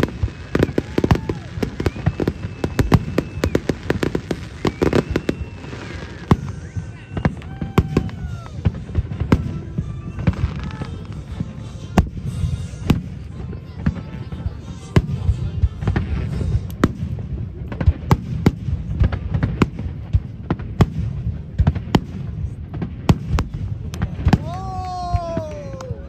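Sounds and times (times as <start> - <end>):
fireworks bangs: 0.0 - 26.0.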